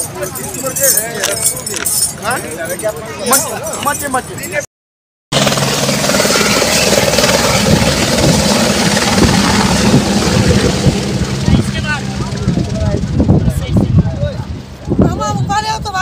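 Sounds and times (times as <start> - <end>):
helicopter rotor and turbine: 5.3 - 16.0.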